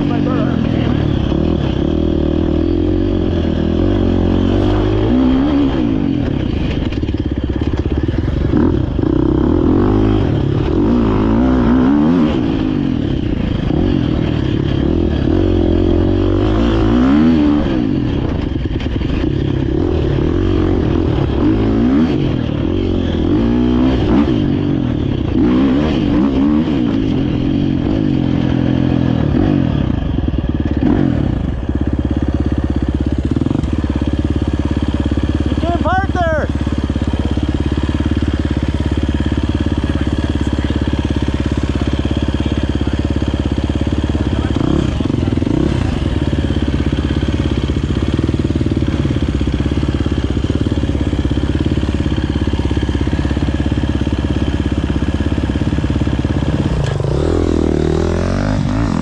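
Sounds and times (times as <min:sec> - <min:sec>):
motorcycle engine idling: 0:00.0 - 0:59.0.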